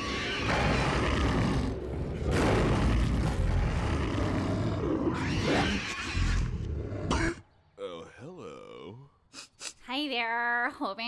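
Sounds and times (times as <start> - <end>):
cartoon fire rumbling: 0.4 - 5.2.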